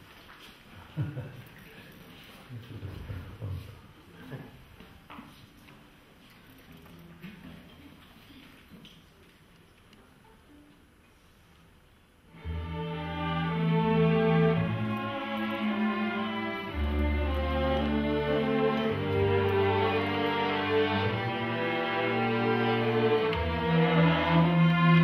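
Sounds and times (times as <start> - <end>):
string orchestra playing slow chords: 12.3 - 25.0.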